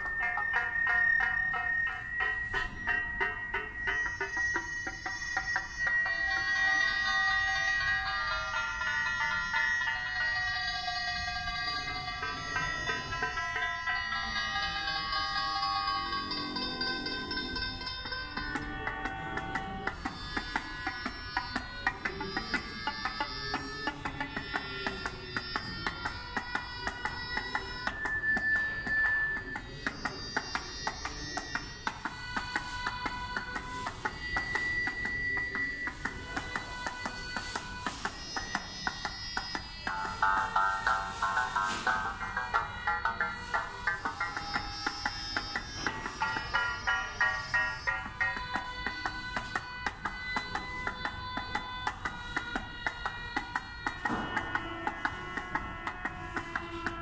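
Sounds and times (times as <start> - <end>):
electronic music pitched notes: 0.0 - 57.0.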